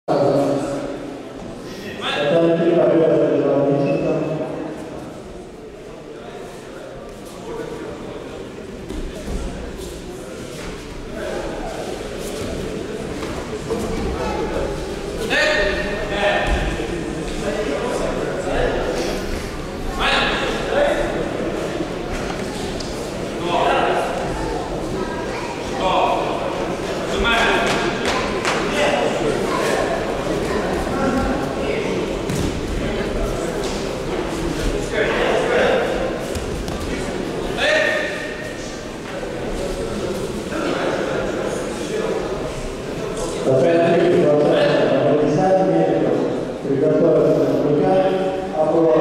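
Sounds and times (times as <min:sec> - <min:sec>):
voices echoing in a hall: 0:00.0 - 0:49.0.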